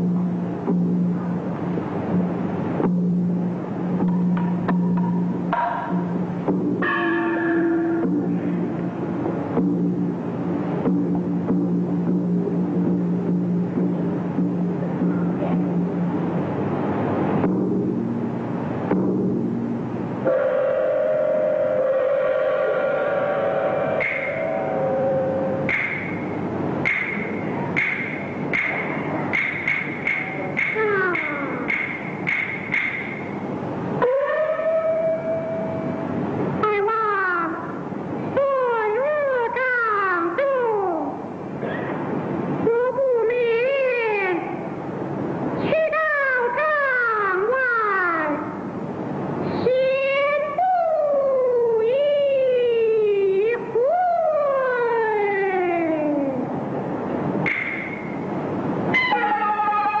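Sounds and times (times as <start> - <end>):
percussion strikes: 0.0 - 20.4, 21.7 - 34.2, 56.7 - 60.0
high held note: 6.8 - 9.0, 18.9 - 29.2
opera singing long held note: 20.3 - 25.7
opera percussion clatter: 24.0 - 24.8, 25.6 - 33.4.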